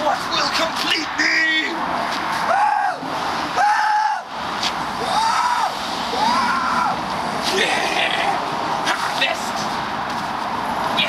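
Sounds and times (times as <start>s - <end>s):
street traffic noise: 0.0s - 11.0s.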